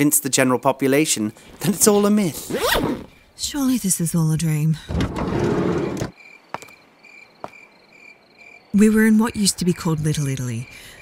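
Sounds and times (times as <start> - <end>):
crickets chirping: 6.1 - 11.0.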